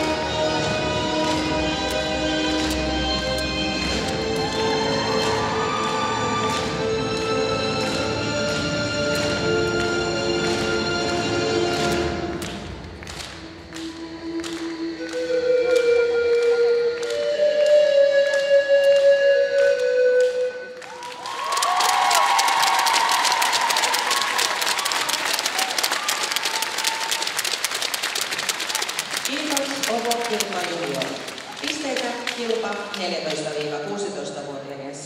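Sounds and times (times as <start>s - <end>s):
audience applause and cheering: 0.0s - 15.8s, 20.2s - 33.6s
music with held notes and beat: 0.0s - 20.8s.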